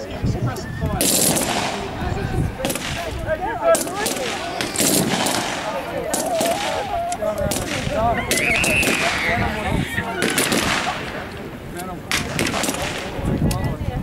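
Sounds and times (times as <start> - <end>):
rifle and machine gun fire: 1.0 - 2.0, 3.7 - 6.9, 10.2 - 11.2, 12.1 - 13.2
people shouting: 3.4 - 11.1.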